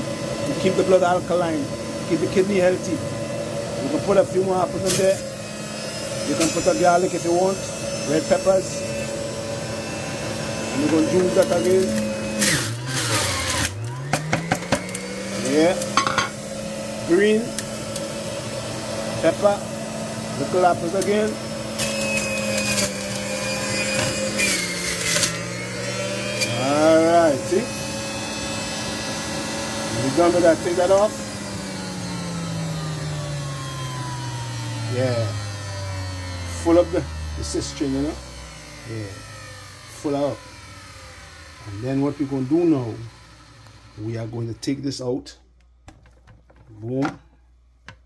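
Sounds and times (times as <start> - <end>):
electric juicer motor running: 0.0 - 45.1
juicer grinding produce: 0.0 - 45.2.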